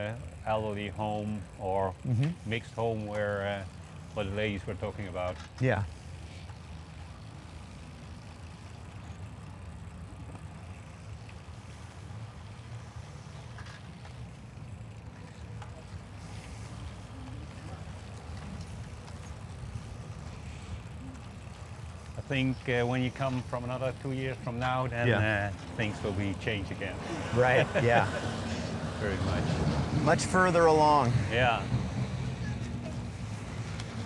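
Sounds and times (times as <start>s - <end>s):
bicycle tyres on brick pavers: 0.0s - 34.0s.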